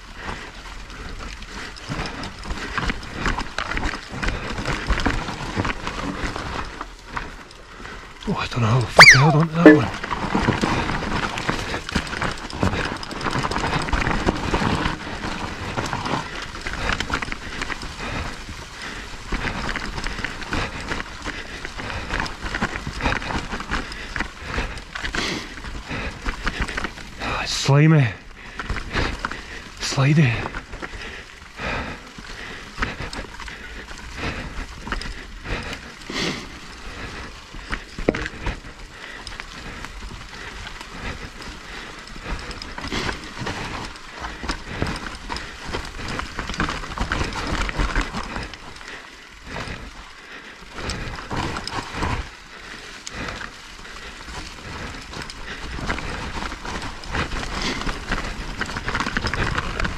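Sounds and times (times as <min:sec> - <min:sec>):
bike tyres crunching over dirt: 0:00.0 - 0:08.2, 0:10.0 - 0:59.9
bike rattling and knocking: 0:10.0 - 0:27.2, 0:36.6 - 0:50.0, 0:50.8 - 0:59.9.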